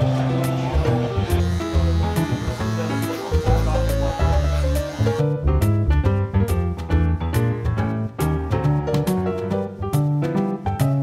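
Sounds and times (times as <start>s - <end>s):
bass line: 0.0s - 10.2s.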